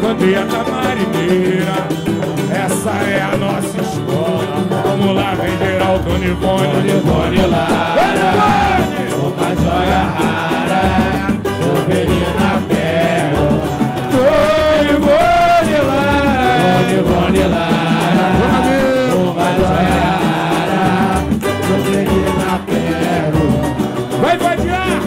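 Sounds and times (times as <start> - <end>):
samba percussion rhythm: 0.0 - 25.0
singers and crowd singing along: 0.0 - 25.0.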